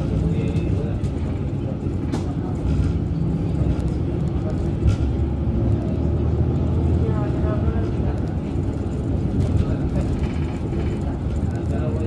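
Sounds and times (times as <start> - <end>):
bus engine and tyres rumbling: 0.0 - 12.0
faint voices: 0.0 - 12.0.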